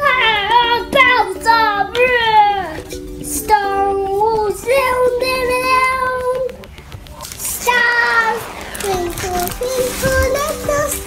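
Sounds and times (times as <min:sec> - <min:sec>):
young child singing: 0:00.0 - 0:06.6, 0:07.5 - 0:11.0.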